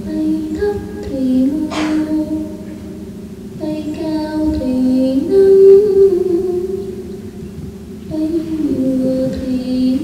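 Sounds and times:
person singing long note: 0.0s - 3.0s, 3.6s - 7.4s.

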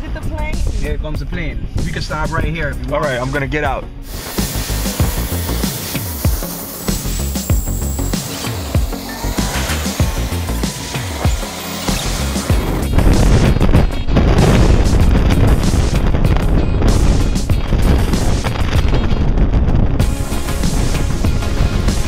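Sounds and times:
music playing: 1.8s - 18.7s, 20.0s - 22.0s
jet engines running up: 4.0s - 13.8s.

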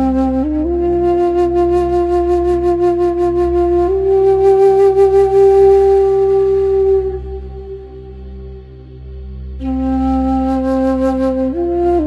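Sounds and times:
flute-like held note: 0.0s - 12.0s.

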